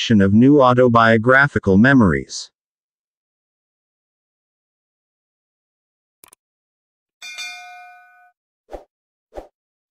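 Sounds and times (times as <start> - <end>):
bright bell ding: 7.2 - 8.4.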